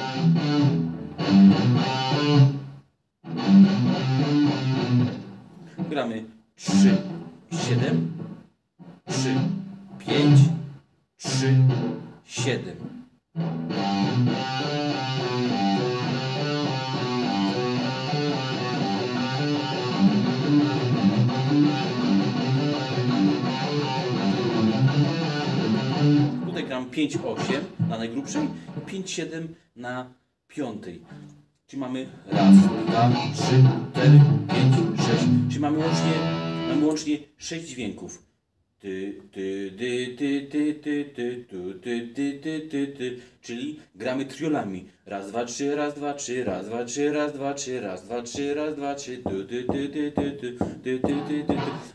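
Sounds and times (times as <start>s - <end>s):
distorted electric guitar low notes: 0.0s - 2.7s, 3.3s - 6.0s, 6.6s - 12.1s, 13.4s - 26.6s, 32.3s - 36.9s
man singing wordless syllables: 5.8s - 8.2s, 9.1s - 12.9s, 31.7s - 38.2s, 38.8s - 51.9s.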